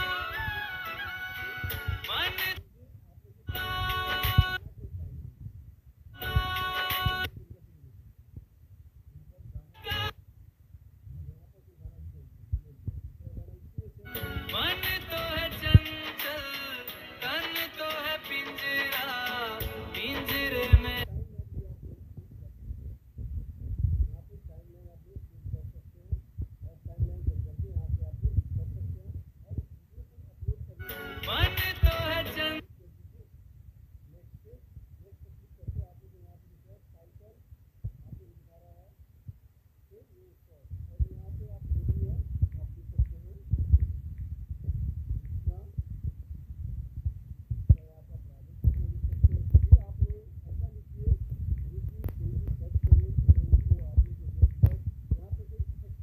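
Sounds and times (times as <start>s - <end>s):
muffled devotional song: 0.0s - 5.3s, 11.3s - 22.9s, 26.7s - 33.3s
pulsing deep bass: 40.8s - 56.0s.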